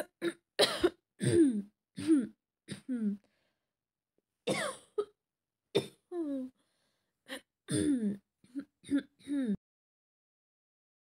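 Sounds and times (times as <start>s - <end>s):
woman coughing: 0.0s - 3.0s, 4.5s - 5.2s, 7.7s - 8.2s
woman clearing her throat: 7.7s - 9.6s.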